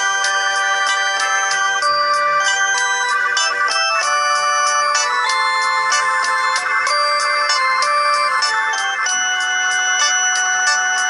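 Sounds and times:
electronic keyboard melody with beat: 0:00.0 - 0:11.0.

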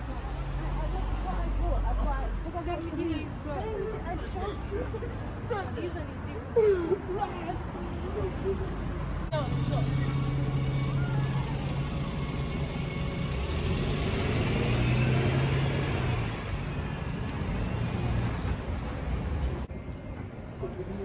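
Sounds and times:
people's voices on the street: 0:00.0 - 0:21.0
vehicle engine humming: 0:00.0 - 0:21.0.

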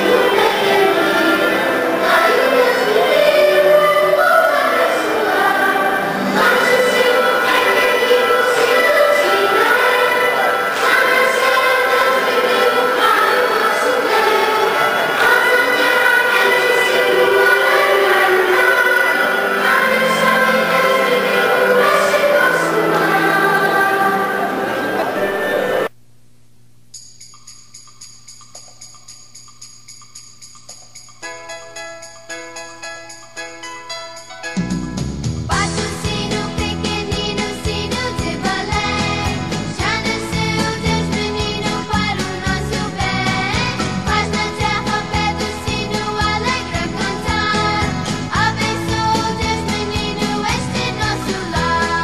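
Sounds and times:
children's choir singing: 0:00.0 - 0:25.9, 0:35.5 - 0:52.0.

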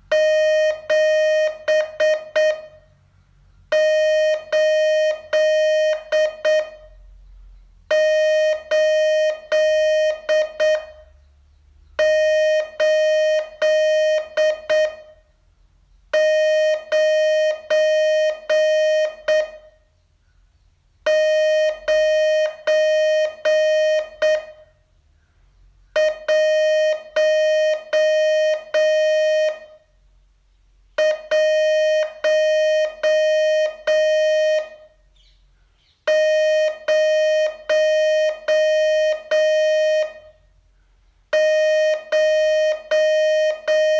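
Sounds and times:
morse code tone: 0:00.0 - 0:03.0, 0:03.7 - 0:07.1, 0:07.9 - 0:11.3, 0:12.0 - 0:15.3, 0:16.1 - 0:19.9, 0:21.0 - 0:24.8, 0:25.9 - 0:29.9, 0:31.0 - 0:35.0, 0:36.1 - 0:40.5, 0:41.3 - 0:43.9.

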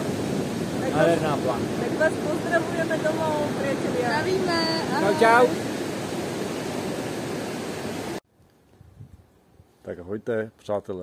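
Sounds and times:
ocean surf breaking: 0:00.0 - 0:08.2.

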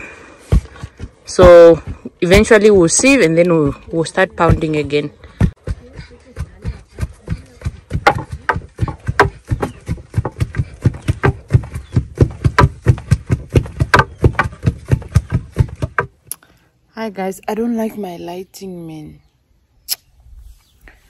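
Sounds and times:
wooden pestles pounding in mortar: 0:00.5 - 0:16.2.

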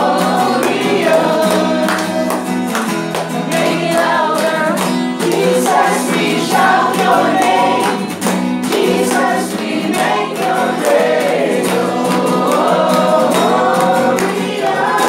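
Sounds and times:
group singing in unison: 0:00.0 - 0:15.0
strummed acoustic guitar: 0:00.0 - 0:15.0.

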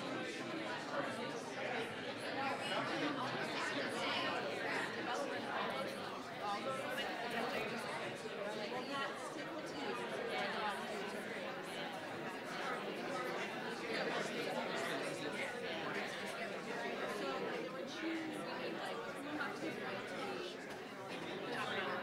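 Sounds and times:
crowd chatter: 0:00.0 - 0:22.0.

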